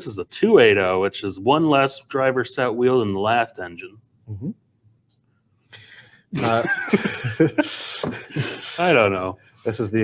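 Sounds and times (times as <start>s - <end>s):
men laughing: 6.4s - 9.0s.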